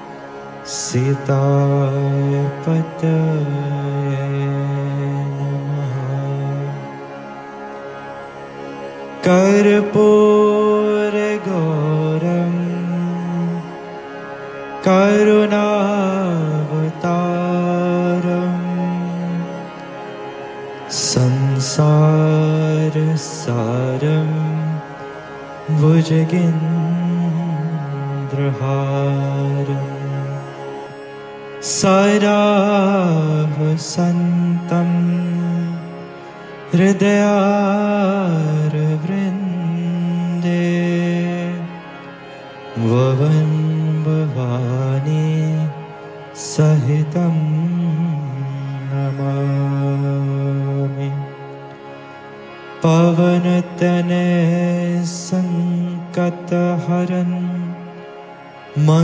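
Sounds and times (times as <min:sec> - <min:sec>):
man singing devotional chant: 0:00.0 - 0:07.2, 0:09.0 - 0:59.0.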